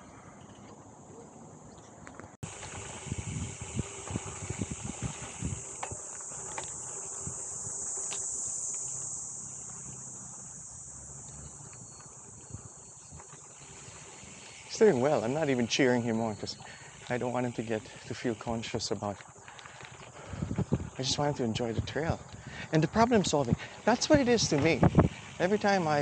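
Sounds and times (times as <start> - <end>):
bike rattling over dirt track: 2.4 - 26.0
insect chirring: 2.4 - 26.0.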